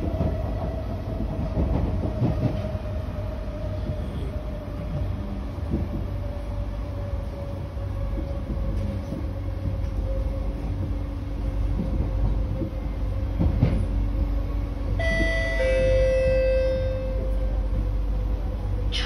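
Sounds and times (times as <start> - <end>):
train running with low rumble: 0.0 - 19.0.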